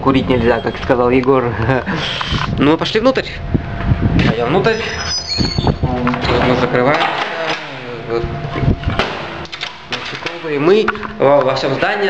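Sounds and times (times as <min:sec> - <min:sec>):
door shutting thud: 0:05.9 - 0:07.9.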